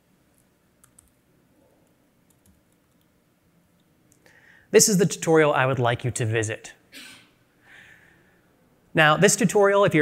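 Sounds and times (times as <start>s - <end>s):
man's soft intake of breath: 4.2s - 4.7s, 7.0s - 8.5s.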